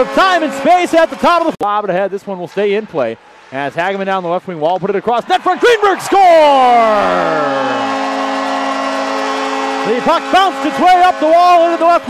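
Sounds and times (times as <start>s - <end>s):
arena goal horn: 0.0s - 1.6s, 5.6s - 12.0s.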